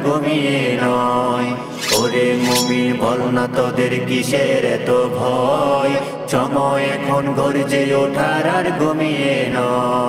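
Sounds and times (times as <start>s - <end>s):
man singing chant-like song: 0.0s - 10.0s.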